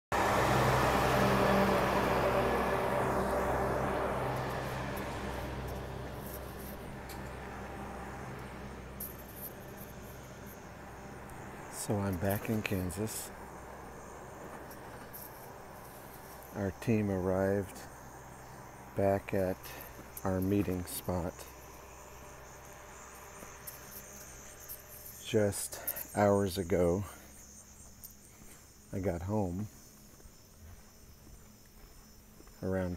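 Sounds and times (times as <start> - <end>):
diesel truck engine droning: 0.0 - 27.9
tyre and road rumble: 0.1 - 32.9
crickets chirping: 0.2 - 32.9.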